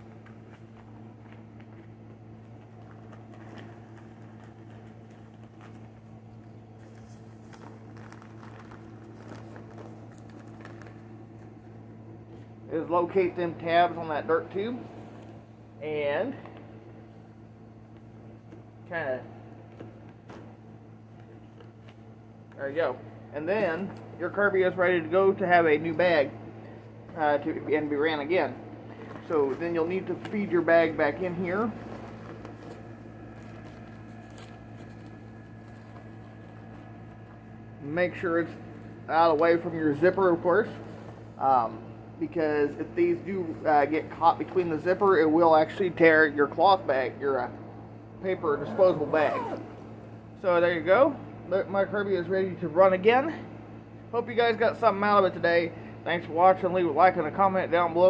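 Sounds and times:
steady low hum: 0:00.0 - 0:58.0
paper bag rustling and crinkling: 0:00.1 - 0:11.5, 0:28.8 - 0:37.6
zipper: 0:48.6 - 0:50.0.

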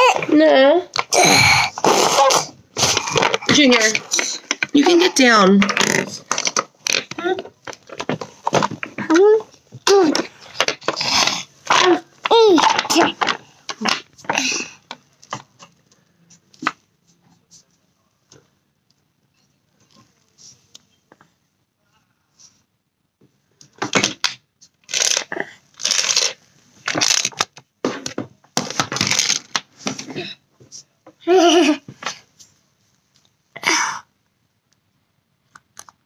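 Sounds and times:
rustling crunching handling noise: 0:24.7 - 0:27.7.

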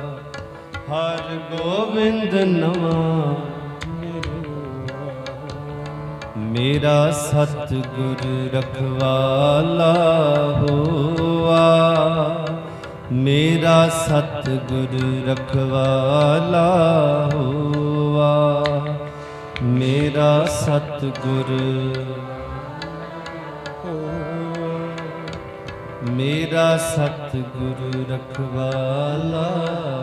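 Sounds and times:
harmonium: 0:00.0 - 0:30.0
man singing ornamented phrases: 0:00.0 - 0:30.0
tabla: 0:00.0 - 0:30.0.

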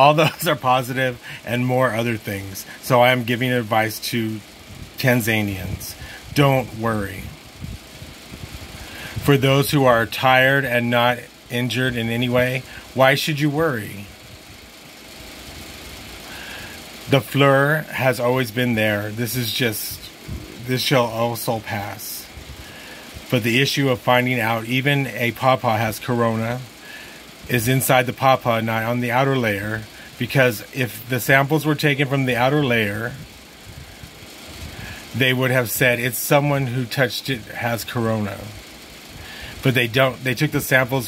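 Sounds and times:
even hiss with low rumble: 0:00.0 - 0:41.0
low background hum: 0:00.0 - 0:41.0.

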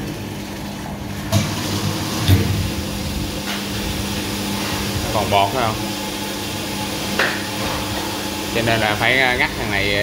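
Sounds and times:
filling machine humming: 0:00.0 - 0:10.0.

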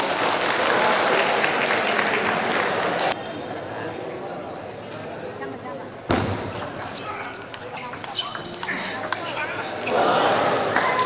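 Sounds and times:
voices rising loudly: 0:06.7 - 0:11.0.

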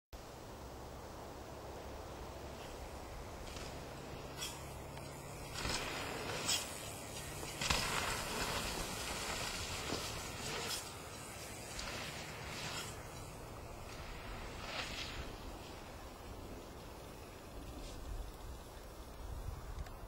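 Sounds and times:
bike tyres on loose dirt: 0:00.2 - 0:20.0.

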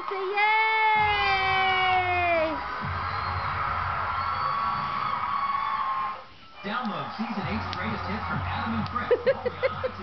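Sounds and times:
music on television: 0:00.0 - 0:10.0
studio audience cheering and whooping: 0:00.0 - 0:10.0.

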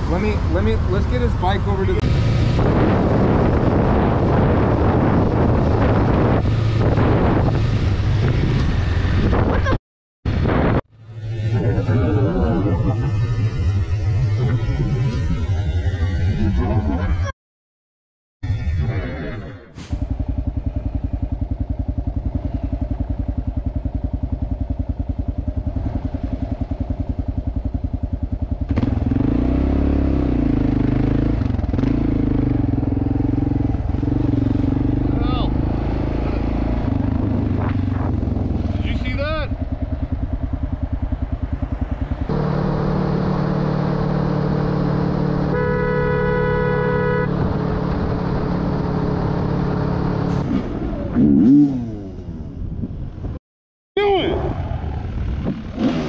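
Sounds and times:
motorcycle engine running: 0:19.8 - 0:50.3
horn: 0:45.5 - 0:47.5.

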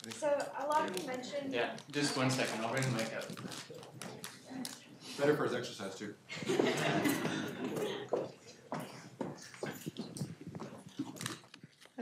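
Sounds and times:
audience laughing: 0:06.3 - 0:08.0.

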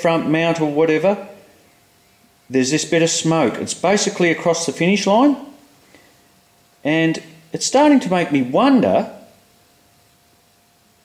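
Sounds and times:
man narrating: 0:00.0 - 0:01.3, 0:02.5 - 0:05.5, 0:06.8 - 0:09.3
faint steady hum: 0:00.0 - 0:11.0.

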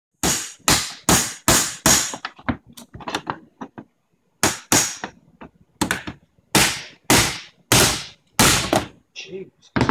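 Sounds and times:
hammer blows on metal computer case: 0:06.5 - 0:08.9.

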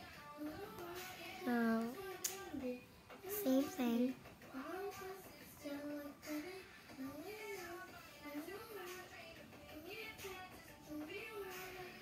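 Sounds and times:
child singing or humming: 0:00.0 - 0:09.2.

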